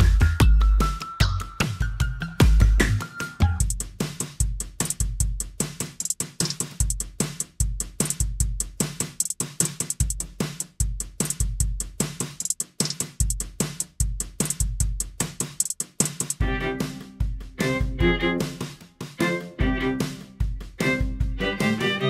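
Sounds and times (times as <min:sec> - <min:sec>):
drum beat: 0:00.0 - 0:22.0
hi-hat ticks: 0:03.4 - 0:19.0.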